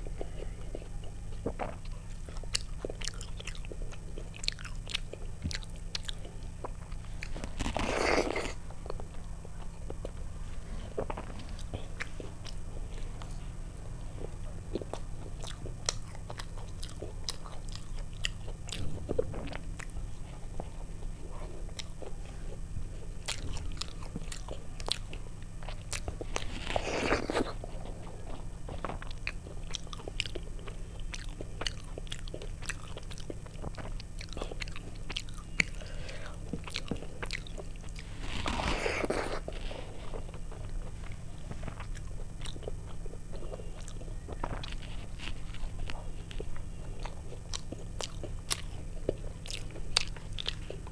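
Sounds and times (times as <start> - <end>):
wet chewing mouth sounds: 0.0 - 50.9.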